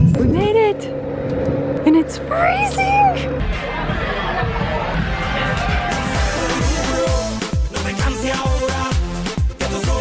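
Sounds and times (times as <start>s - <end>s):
steady engine hum: 0.0s - 8.3s.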